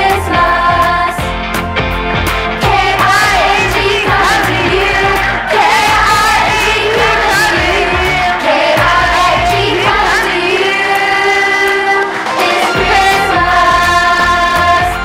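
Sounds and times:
children's choir singing: 0.0s - 1.3s, 2.6s - 15.0s
instrumental accompaniment with bass: 0.0s - 15.0s.

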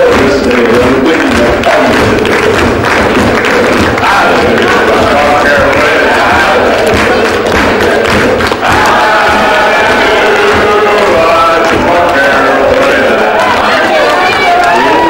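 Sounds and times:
man singing into a microphone: 0.0s - 2.4s, 10.4s - 13.3s
crowd noise: 0.0s - 15.0s.

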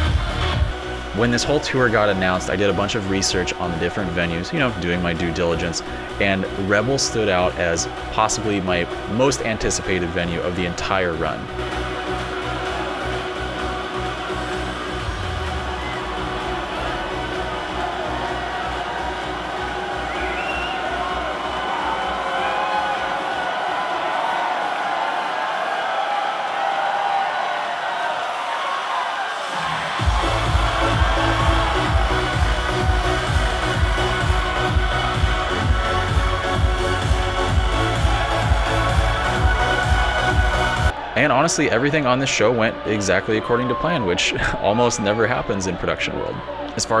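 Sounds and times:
electronic dance music: 0.0s - 26.7s, 27.3s - 47.0s
club crowd cheering: 0.0s - 47.0s.

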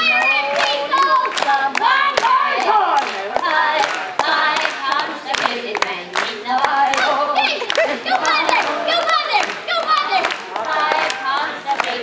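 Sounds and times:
hand claps: 0.0s - 12.0s
voices singing: 0.0s - 12.0s.

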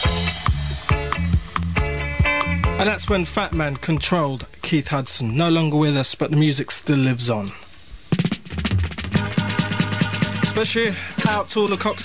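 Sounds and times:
reggae music on radio: 0.0s - 4.1s, 8.1s - 12.0s
drum fill: 8.1s - 11.5s.

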